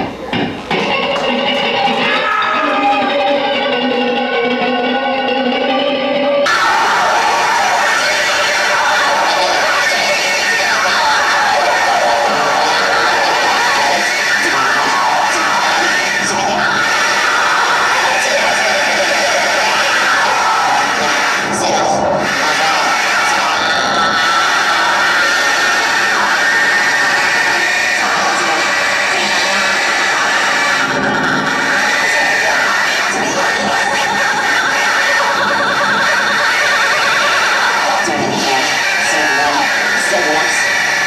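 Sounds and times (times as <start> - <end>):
harsh bowed violin noise: 6.4 - 41.0.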